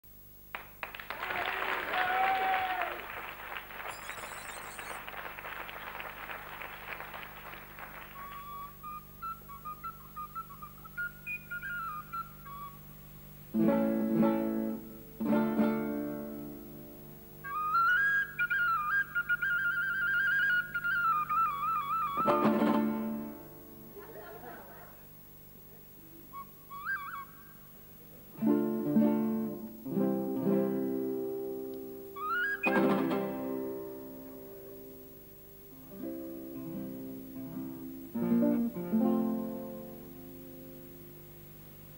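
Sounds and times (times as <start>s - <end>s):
audience applause: 0.5s - 8.7s
plastic flute notes: 3.9s - 5.0s, 8.1s - 12.9s, 17.4s - 22.6s, 26.3s - 27.6s, 32.2s - 33.2s
toy whistle melody: 3.9s - 5.0s, 8.2s - 12.8s, 17.4s - 22.3s, 26.4s - 27.4s, 32.2s - 32.9s.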